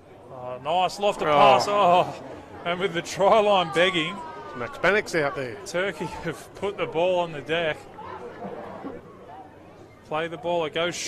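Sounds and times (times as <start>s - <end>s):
faint voices chattering: 0.0s - 11.0s
low ambient noise: 0.0s - 11.0s.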